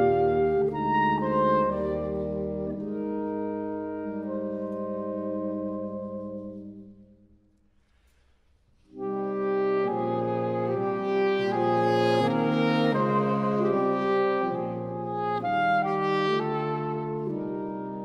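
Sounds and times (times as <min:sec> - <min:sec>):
saxophone quartet playing a chord: 0:00.0 - 0:06.9, 0:08.9 - 0:18.0.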